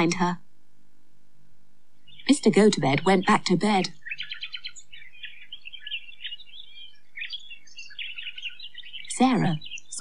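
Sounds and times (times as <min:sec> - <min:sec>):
small birds chirping: 0:02.0 - 0:10.0.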